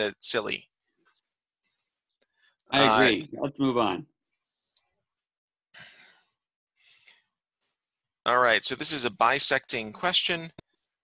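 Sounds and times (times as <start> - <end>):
faint breath: 5.8 - 7.4.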